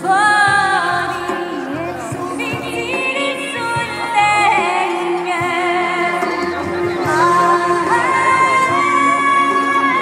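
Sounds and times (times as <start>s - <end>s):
woman singing folk ballad: 0.0s - 6.3s, 7.1s - 10.0s.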